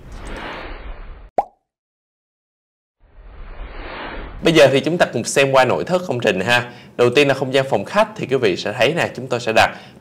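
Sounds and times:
pop with falling pitch: 1.3s - 1.6s
low background hiss: 4.4s - 10.0s.

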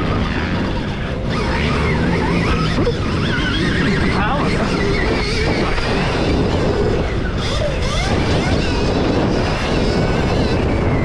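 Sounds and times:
electric motorbike motor whining: 0.0s - 11.0s
wind noise on microphone: 0.0s - 11.0s.

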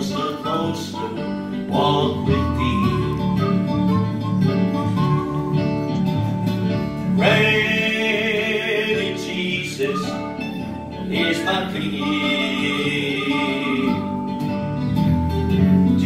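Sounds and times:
man singing into a microphone: 0.0s - 3.5s, 7.2s - 14.2s
instrumental accompaniment: 0.0s - 16.0s.

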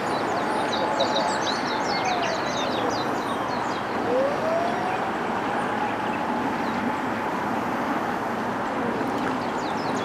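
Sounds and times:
distant siren wailing: 0.0s - 7.8s
distant road traffic: 0.0s - 10.0s
small birds chirping: 9.2s - 10.0s.

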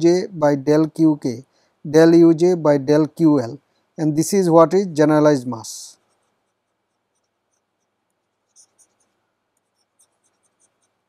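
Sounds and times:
stylus writing on tablet: 5.9s - 11.0s.

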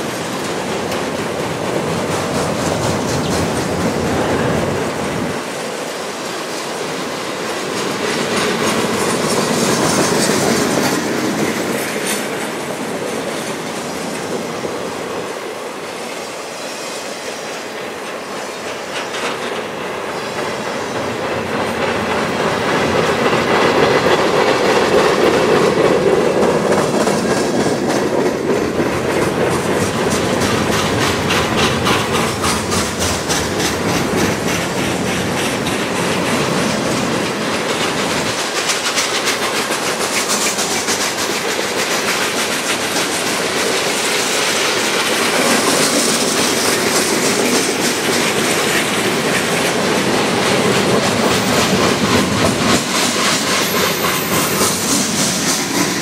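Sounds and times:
wheels clickety-clack: 0.0s - 5.5s, 6.5s - 15.4s, 18.0s - 56.0s
train wheels rumbling on rail: 0.0s - 56.0s.

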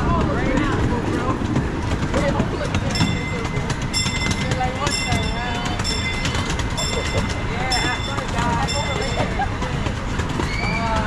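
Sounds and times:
train rumbling on track: 0.0s - 11.0s
crossing bell striking: 2.8s - 9.9s.

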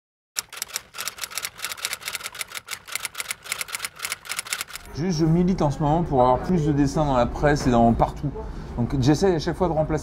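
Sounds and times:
typewriter keys clacking: 0.4s - 4.9s.

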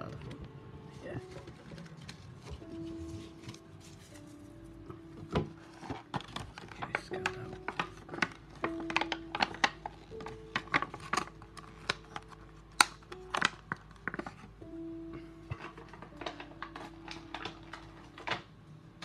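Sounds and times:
soft background music: 0.0s - 19.0s
plastic packaging clicks and crackles: 1.2s - 4.3s, 5.2s - 18.5s.

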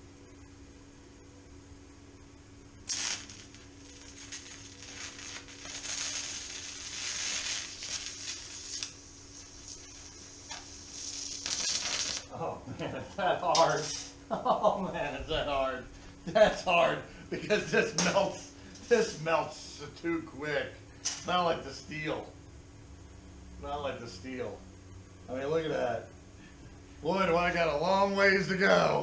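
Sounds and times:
welding arc hissing: 2.8s - 14.5s, 15.1s - 19.9s, 20.6s - 22.3s.

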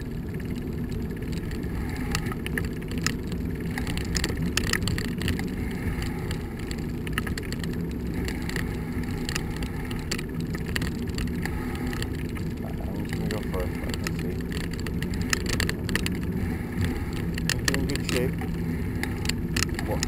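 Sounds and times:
bicycle tyres on asphalt: 0.0s - 20.0s
small clicks and rattles: 0.0s - 20.0s.

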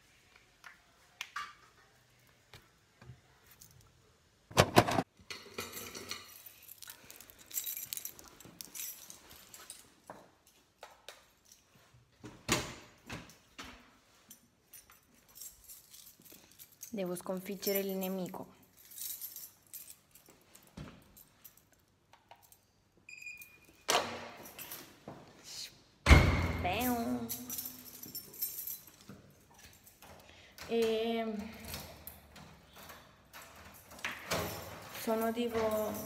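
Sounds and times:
light jingling: 5.7s - 10.6s, 14.1s - 22.8s, 26.7s - 36.0s
rustling handling noise: 5.8s - 12.2s.

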